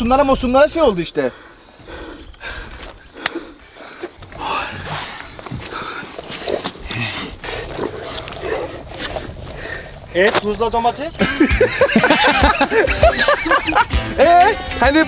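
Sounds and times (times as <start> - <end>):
man breathing hard and gasping: 1.2 - 10.1
sharp clicks: 2.3 - 4.4.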